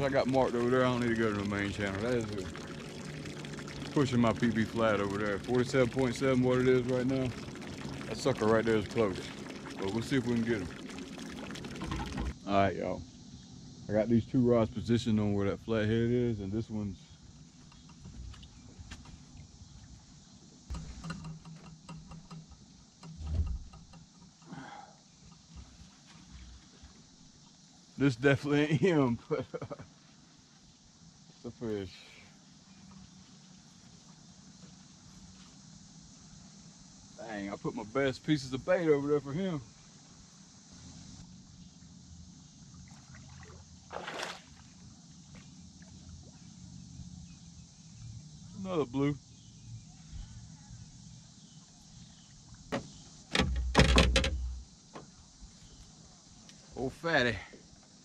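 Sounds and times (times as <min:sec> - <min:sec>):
short splash: 0:00.0 - 0:12.4, 0:42.8 - 0:44.8
dull thump: 0:20.7 - 0:24.1, 0:52.7 - 0:55.1.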